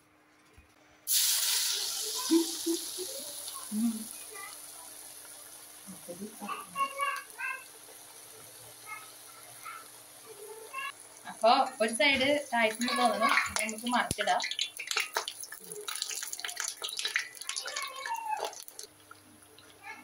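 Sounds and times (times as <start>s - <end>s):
batter sizzling in hot oil: 1.1s - 20.0s.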